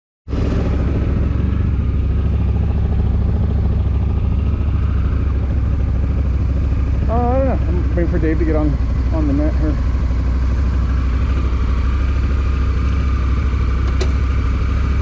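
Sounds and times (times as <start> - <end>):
motorcycle engine idling: 0.3 - 15.0
man speaking: 7.0 - 9.8.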